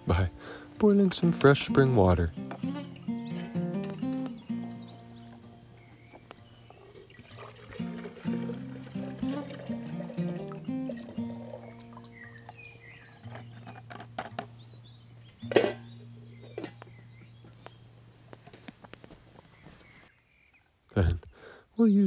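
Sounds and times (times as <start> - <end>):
water poured into a pot: 7.1 - 11.6
background music over low drone: 7.3 - 13.9.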